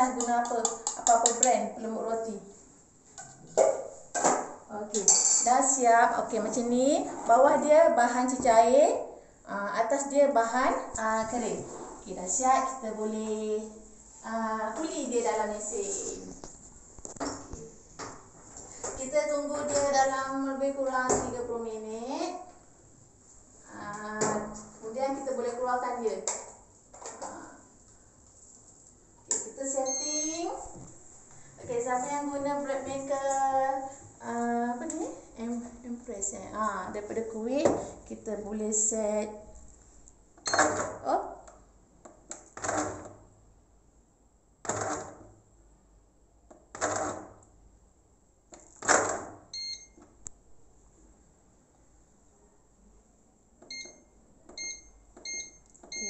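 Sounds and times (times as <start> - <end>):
electronic appliance beep: 29.8 - 30.6, 40.4 - 40.7, 49.5 - 50.0, 53.7 - 56.0.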